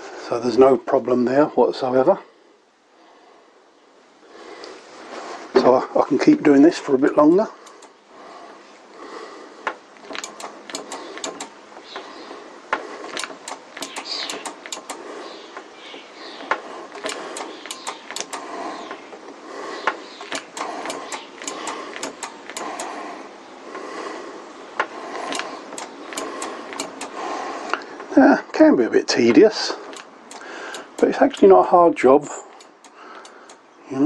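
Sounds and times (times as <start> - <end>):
brake lever clicking: 7.1 - 8.0, 10.0 - 12.0, 13.1 - 15.0, 15.6 - 19.0, 19.8 - 23.0, 24.8 - 27.2, 29.9 - 31.5
spanner knocking on brake caliper: 10.0 - 11.6, 13.1 - 15.0, 16.4 - 19.0, 19.8 - 23.0, 24.8 - 27.2, 29.9 - 31.5.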